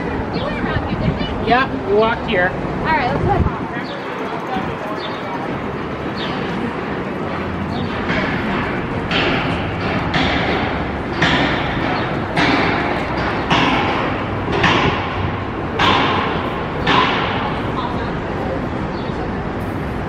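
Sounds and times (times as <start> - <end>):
street noise: 0.0 - 20.0.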